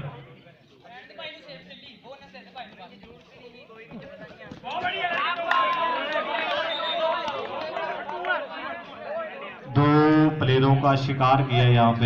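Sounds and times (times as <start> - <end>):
crowd shouting: 4.6 - 9.7.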